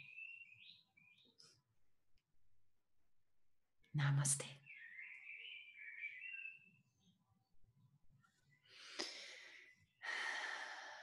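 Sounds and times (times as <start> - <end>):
person breathing: 8.6 - 11.0.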